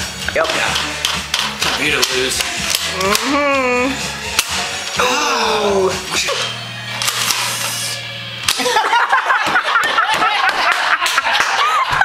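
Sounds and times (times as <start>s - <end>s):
falling vocal cry: 4.9s - 6.4s
toy blaster mechanism clicks: 7.0s - 8.0s.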